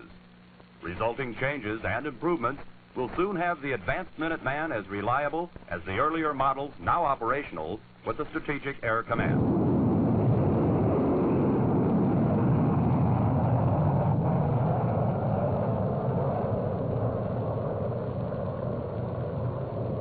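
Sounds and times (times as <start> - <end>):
rocket motor deep rumble: 9.1 - 20.0.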